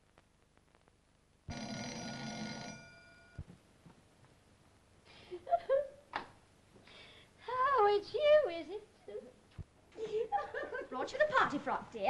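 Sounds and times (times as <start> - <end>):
electric bell ringing: 1.5 - 3.4.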